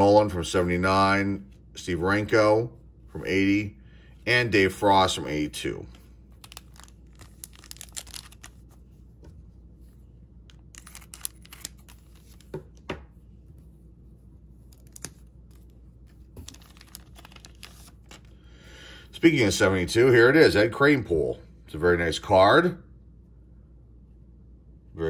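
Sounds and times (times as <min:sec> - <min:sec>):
wrapper crinkling and rustling: 0:06.2 - 0:08.8, 0:10.5 - 0:12.5, 0:14.7 - 0:18.3
sharp wrapper crackles: 0:06.4 - 0:08.7, 0:10.5 - 0:12.5, 0:16.4 - 0:18.3.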